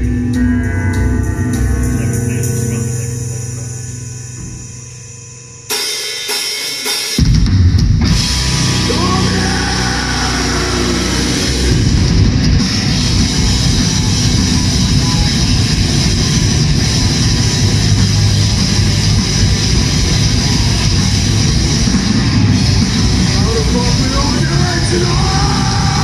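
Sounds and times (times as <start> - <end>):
electric guitars: 0.0 - 5.7, 7.2 - 26.0
bass guitar: 0.0 - 5.8, 7.2 - 26.0
drum kit: 5.6 - 26.0.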